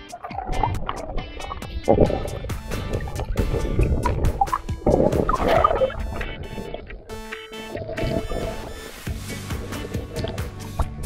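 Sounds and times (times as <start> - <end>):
water churning and bubbling: 0.0 - 11.0
bubbly blips and clicks: 0.2 - 8.8.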